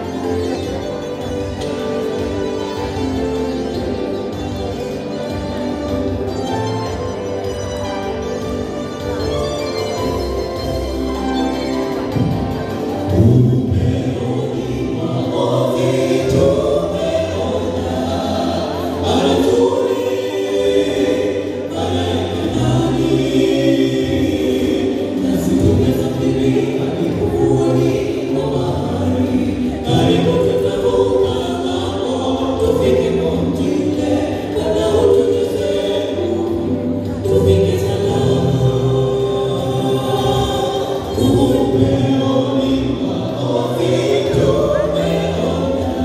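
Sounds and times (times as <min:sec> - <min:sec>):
group singing gospel in harmony: 0:00.0 - 0:46.0.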